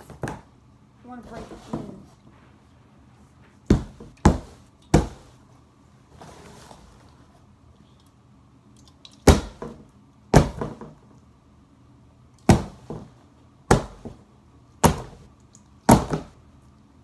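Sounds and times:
cardboard box being struck: 13.7 - 14.2.

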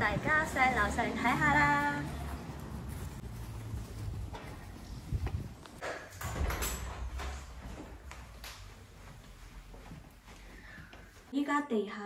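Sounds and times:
footsteps on hard floor: 1.6 - 5.8, 7.1 - 11.3.

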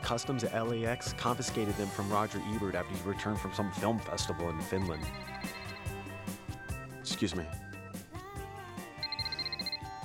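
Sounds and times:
background music: 0.0 - 10.0
telephone electronic trill ring: 4.8 - 6.4, 9.0 - 9.9.

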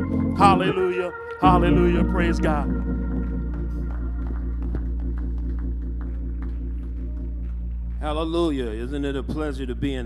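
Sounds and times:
deep bass: 0.0 - 10.0
organ sustained chords: 0.0 - 10.0.

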